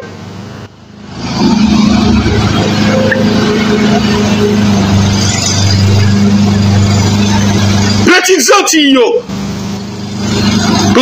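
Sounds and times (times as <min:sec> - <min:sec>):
engine-like drone with low hum: 0:00.0 - 0:11.0.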